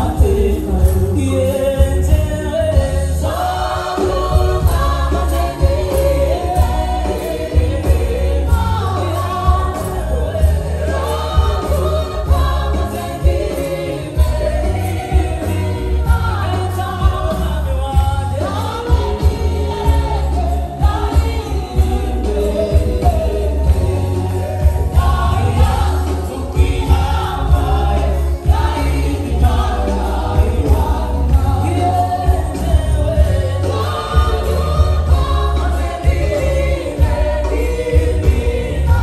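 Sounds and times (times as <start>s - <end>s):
gospel choir singing: 0.0s - 39.0s
steady drum beat: 0.0s - 39.0s.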